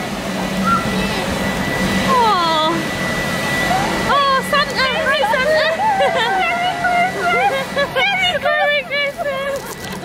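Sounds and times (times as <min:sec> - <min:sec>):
steady sustained tone: 0:00.0 - 0:09.4.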